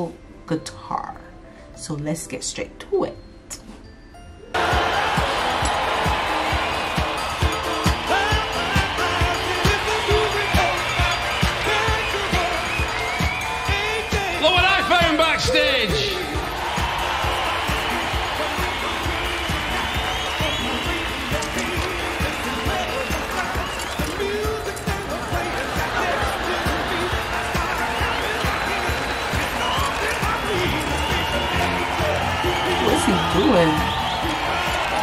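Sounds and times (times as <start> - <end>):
audience laughing and cheering: 4.6 - 35.0
rock music: 4.6 - 35.0.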